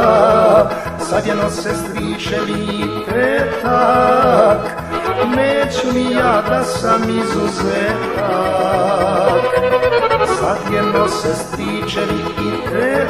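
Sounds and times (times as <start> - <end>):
accordion-led band playing: 0.0 - 13.0
bass and drum beat: 0.0 - 13.0
person singing: 0.0 - 13.0.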